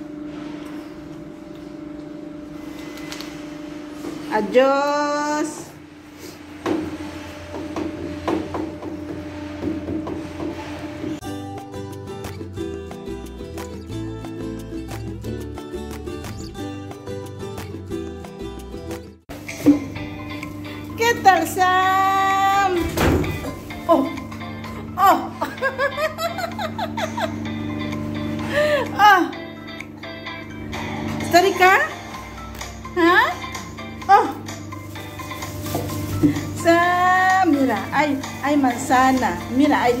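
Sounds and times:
steady mechanical hum: 0:00.0 - 0:11.2, 0:19.3 - 0:40.0.

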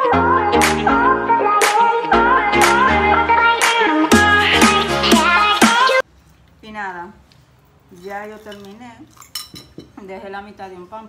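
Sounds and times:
metal spoon clinking on bowl: 0:08.0 - 0:10.0.

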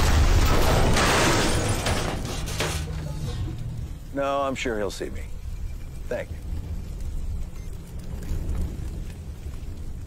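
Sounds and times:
fire crackling: 0:00.0 - 0:10.0
low rumble of flames: 0:00.0 - 0:10.0.

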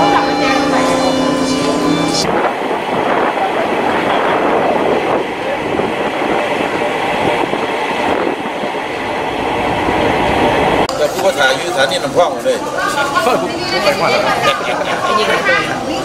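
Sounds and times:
train running on rails: 0:00.0 - 0:16.0.

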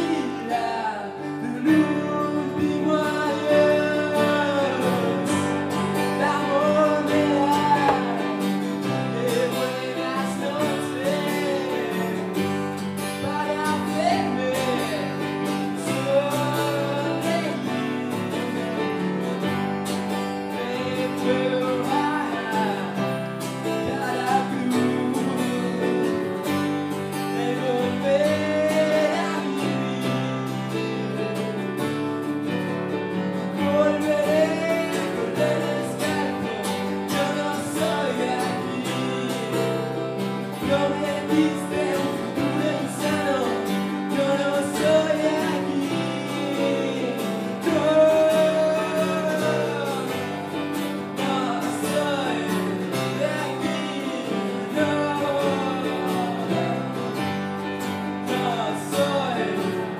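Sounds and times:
acoustic guitar: 0:00.0 - 0:59.9
electric keyboard: 0:00.0 - 0:59.9.

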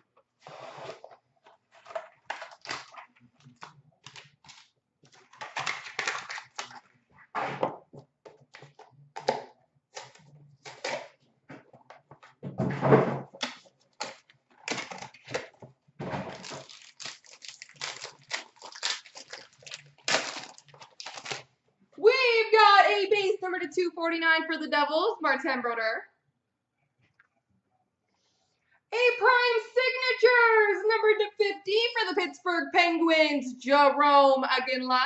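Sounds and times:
cardboard and wrapper crinkling: 0:00.5 - 0:06.9, 0:13.3 - 0:21.5
person speaking: 0:22.0 - 0:26.0, 0:29.0 - 0:35.0.

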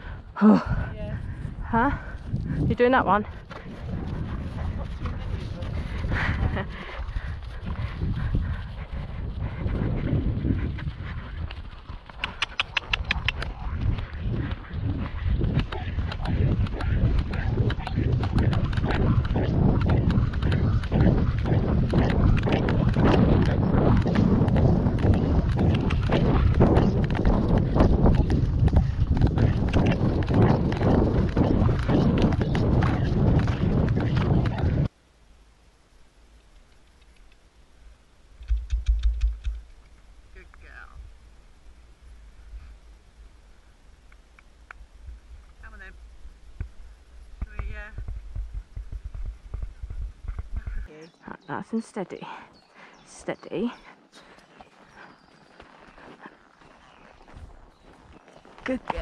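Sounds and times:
low rumble of movement: 0:00.8 - 0:34.9, 0:36.4 - 0:50.9
horse hoofbeats on wet grass: 0:02.7 - 0:34.9, 0:46.6 - 0:50.9.

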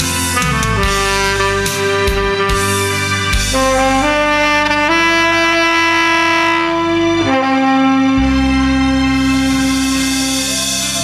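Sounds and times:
backing track with low bass: 0:00.0 - 0:11.0
tenor saxophone long note: 0:00.3 - 0:10.6.

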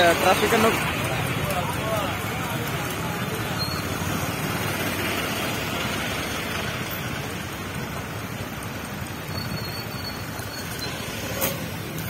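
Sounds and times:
indistinct voices: 0:00.0 - 0:07.6
traffic of trucks and cars: 0:00.0 - 0:12.0.

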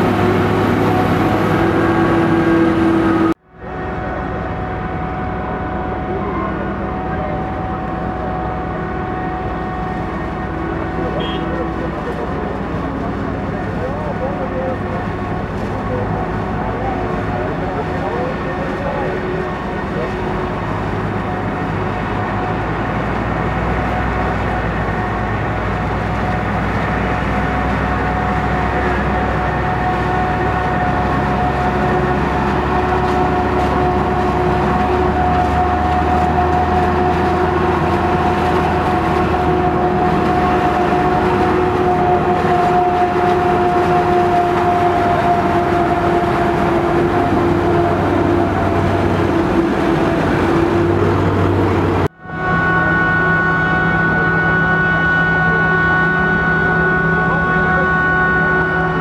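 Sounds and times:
high steady machine whine: 0:00.0 - 0:59.0
tractor engine: 0:00.0 - 0:59.0.

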